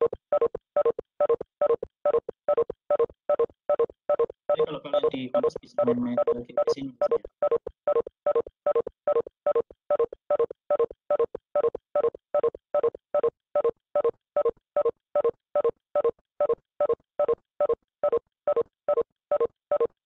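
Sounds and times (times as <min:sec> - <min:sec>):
short electronic beeps: 0:00.3 - 0:20.0.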